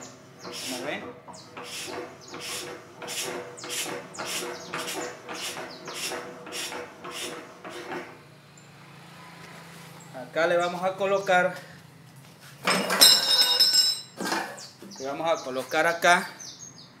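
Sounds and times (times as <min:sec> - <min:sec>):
compressor piston pumping air: 0:00.4 - 0:08.2.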